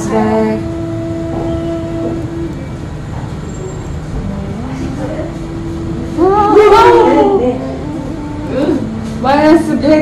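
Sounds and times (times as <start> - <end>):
held tone: 0.0 - 9.6
rumble and rush of vapour flow: 0.0 - 10.0.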